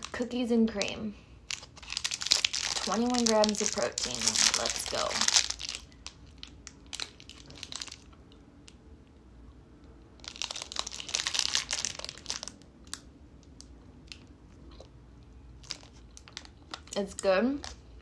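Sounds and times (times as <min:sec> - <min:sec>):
plastic wrapper crinkling: 0:00.0 - 0:08.8, 0:10.2 - 0:18.0.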